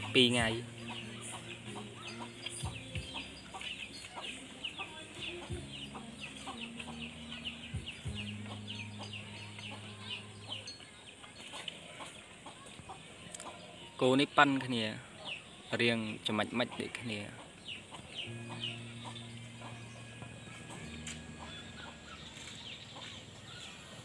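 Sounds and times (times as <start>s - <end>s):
chickens cheeping and clucking: 0.0s - 24.0s.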